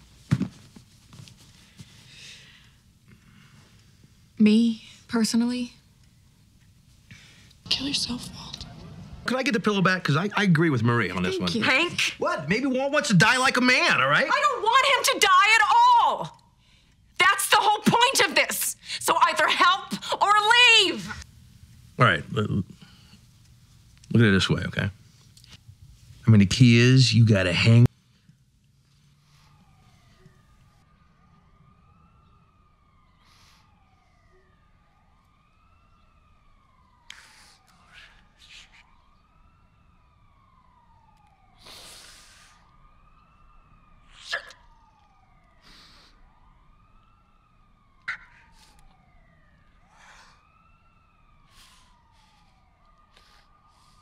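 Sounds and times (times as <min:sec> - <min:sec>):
emergency vehicle sirens wailing: 0:07.7 - 0:16.4, 0:29.0 - 0:54.0.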